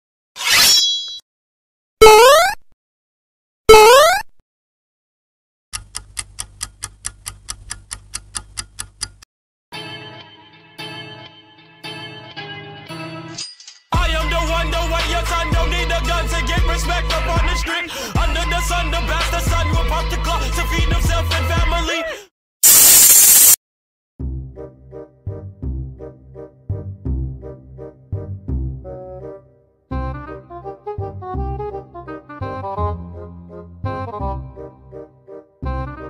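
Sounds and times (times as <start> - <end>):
static hiss burst: 22.6 - 23.6.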